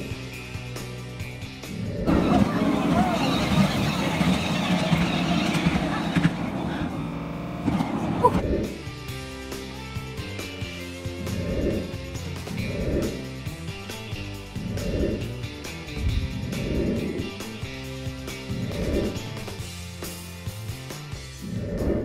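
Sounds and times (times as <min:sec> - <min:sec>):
background music: 0:00.0 - 0:22.0
indistinct voices: 0:01.7 - 0:08.8
miniature train running: 0:02.1 - 0:08.1.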